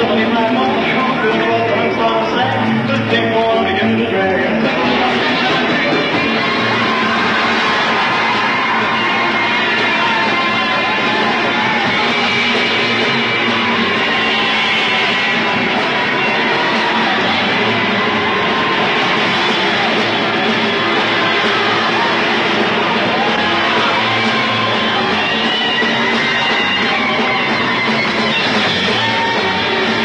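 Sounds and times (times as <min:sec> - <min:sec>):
rock band with electric guitar: 0:00.0 - 0:30.0.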